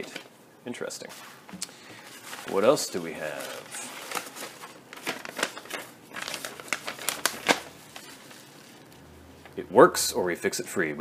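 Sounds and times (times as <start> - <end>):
paper and mailer crinkling: 2.0 - 9.0.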